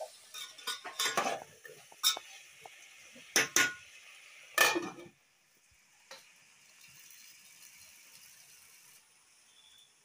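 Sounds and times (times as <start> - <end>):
water trickling into a bowl: 6.6 - 9.9.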